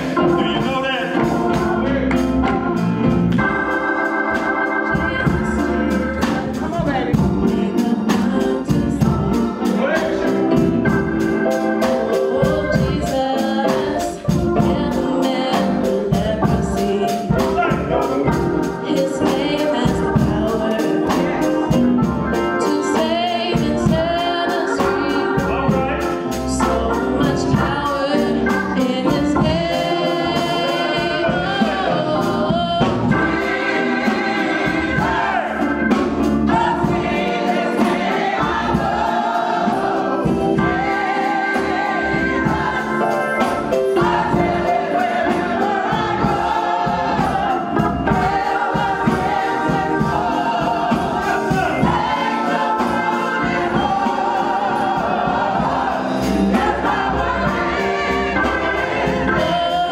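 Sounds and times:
choir voices: 0:00.0 - 0:59.9
musical accompaniment: 0:00.0 - 0:59.9
woman singing gospel solo: 0:04.8 - 0:09.6, 0:12.1 - 0:17.5, 0:18.8 - 0:21.8, 0:22.4 - 0:35.4, 0:56.5 - 0:59.9.

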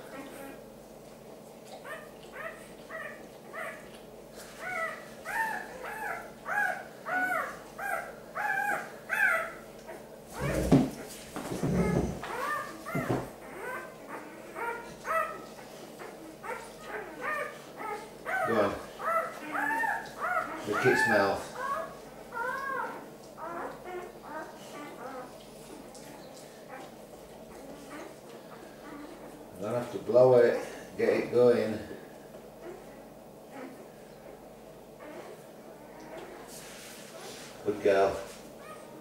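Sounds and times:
newborn puppies crying: 0:00.0 - 0:00.7, 0:01.6 - 0:36.5, 0:37.6 - 0:39.0
dull rubbing and bumping: 0:10.3 - 0:13.4.

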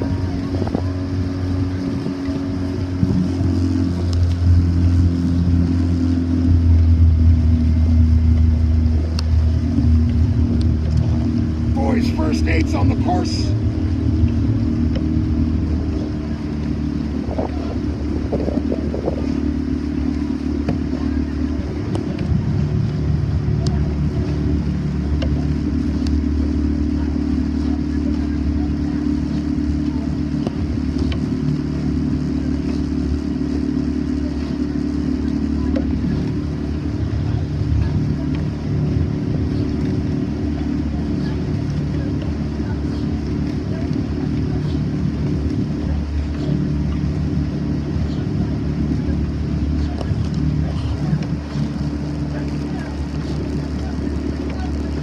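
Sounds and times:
motorboat engine running: 0:00.0 - 0:55.0
water noise: 0:00.0 - 0:55.0
wind: 0:00.0 - 0:55.0.

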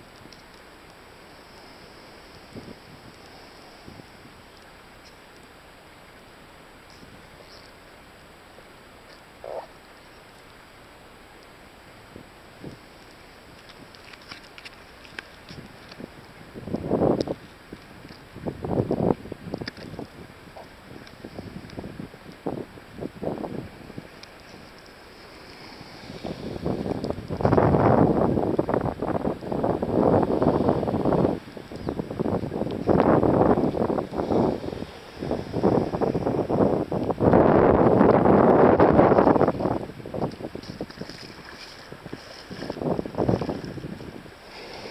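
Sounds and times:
surf hissing on beach: 0:00.0 - 0:44.9
wind buffeting microphone: 0:02.3 - 0:04.5, 0:12.0 - 0:14.0, 0:15.1 - 0:44.9.

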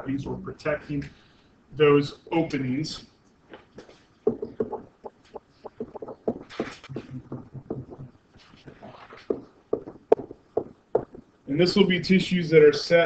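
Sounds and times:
stylus tapping and scraping screen: 0:03.3 - 0:11.4.

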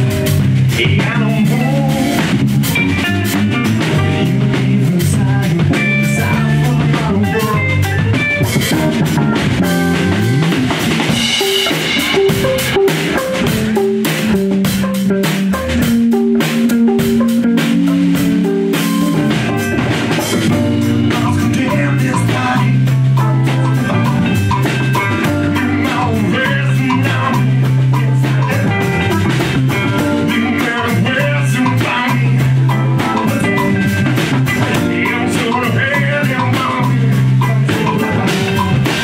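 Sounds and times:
bass guitar: 0:00.0 - 0:39.0
drum kit: 0:00.0 - 0:39.0
electric guitars: 0:00.0 - 0:39.0.

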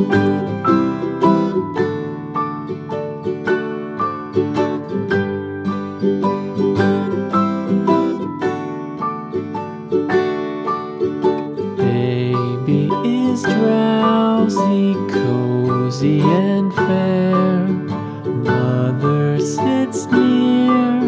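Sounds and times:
plucked-string lullaby music: 0:00.0 - 0:21.0.

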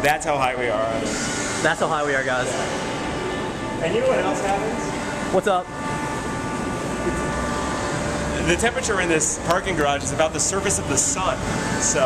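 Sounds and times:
city traffic and machinery drone: 0:00.0 - 0:12.0
faint steady whine: 0:00.0 - 0:12.0.

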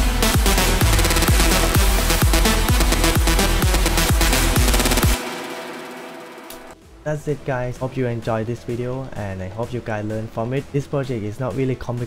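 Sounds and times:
house music drop: 0:00.0 - 0:06.9.

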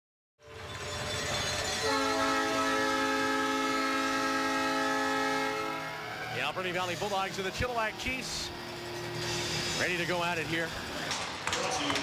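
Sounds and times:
multi-note air horn chord: 0:01.8 - 0:06.2.

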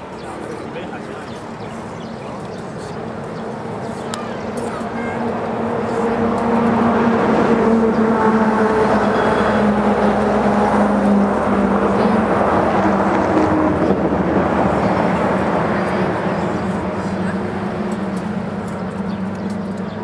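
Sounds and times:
engine running with low hum: 0:00.3 - 0:20.0.

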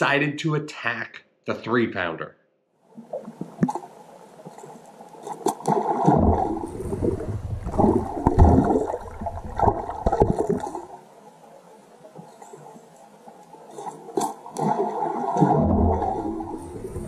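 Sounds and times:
underwater splashing and gurgling: 0:02.9 - 0:17.0.

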